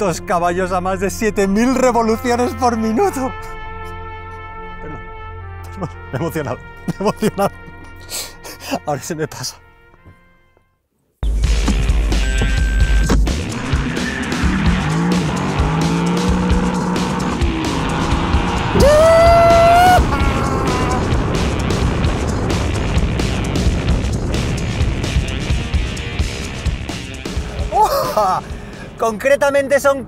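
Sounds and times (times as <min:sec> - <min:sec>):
car engine revving: 0:11.6 - 0:27.7.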